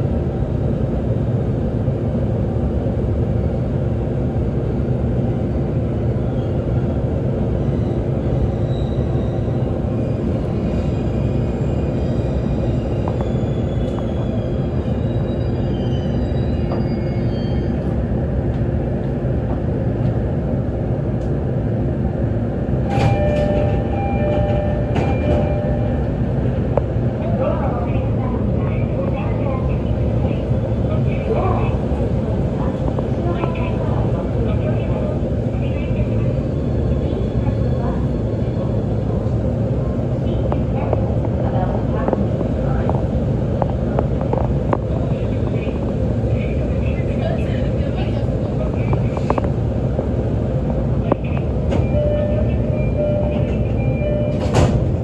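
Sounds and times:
train interior rumble: 0:00.0 - 0:55.0.

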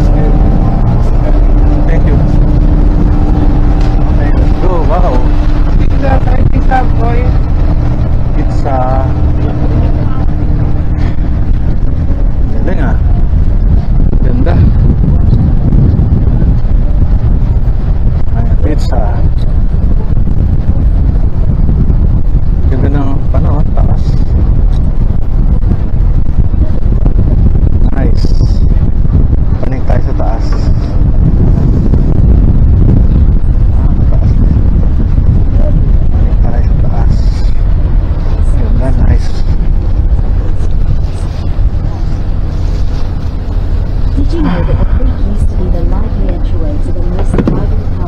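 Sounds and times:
wind buffeting microphone: 0:00.0 - 0:48.0.

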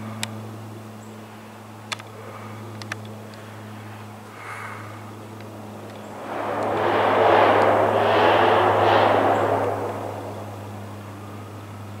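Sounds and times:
low propeller drone: 0:00.0 - 0:12.0
rushing aircraft noise: 0:01.7 - 0:12.0.

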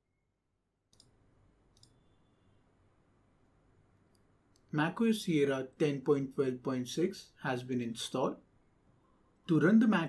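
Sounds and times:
faint room hiss: 0:00.0 - 0:10.0
computer mouse clicks: 0:00.9 - 0:02.2.

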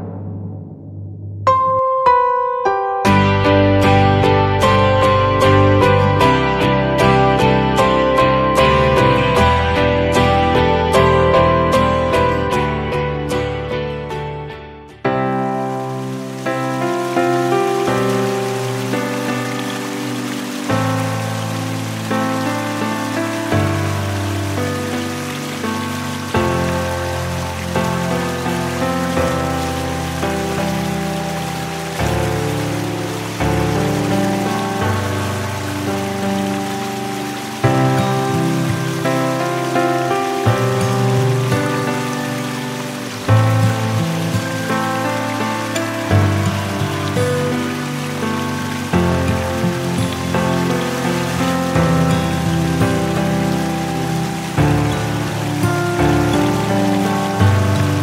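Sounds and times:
calm instrumental music: 0:01.4 - 0:58.0
steady water hiss: 0:15.3 - 0:58.0.

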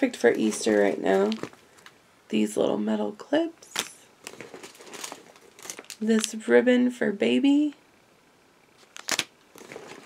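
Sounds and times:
plastic packaging crinkling: 0:00.3 - 0:02.0, 0:03.8 - 0:06.4, 0:08.8 - 0:10.0.

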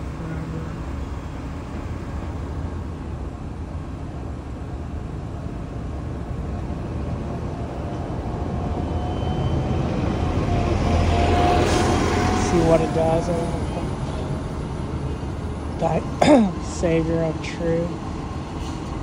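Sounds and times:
road traffic rumble: 0:00.0 - 0:19.0
vehicle approaching: 0:00.0 - 0:19.0.

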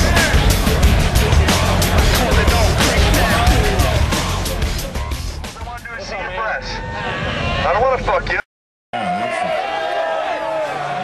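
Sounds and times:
background music with steady bass: 0:00.0 - 0:06.3
indistinct voices: 0:00.0 - 0:08.3.

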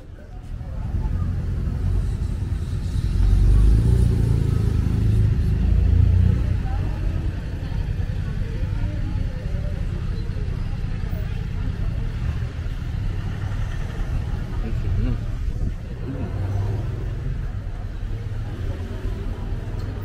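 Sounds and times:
traffic passing close by: 0:00.0 - 0:20.0.

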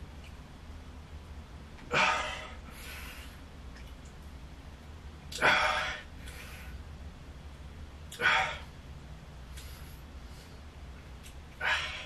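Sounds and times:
low steady hum: 0:00.0 - 0:12.0
man exhaling forcefully: 0:08.2 - 0:08.7.

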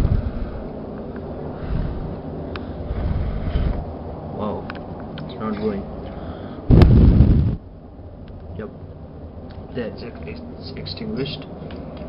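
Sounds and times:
rush of air on microphone: 0:00.0 - 0:04.4, 0:06.2 - 0:07.6.

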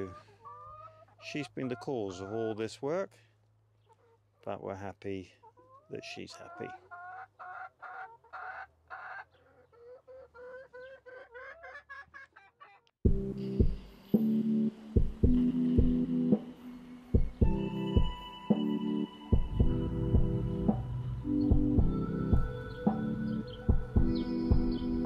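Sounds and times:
hens clucking: 0:00.0 - 0:02.8, 0:03.8 - 0:04.6, 0:05.2 - 0:12.9
background music with steady beat: 0:13.1 - 0:25.0.

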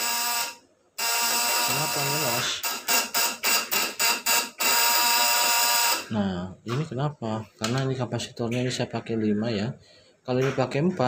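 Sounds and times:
high-voltage converter buzzing: 0:00.0 - 0:06.2.

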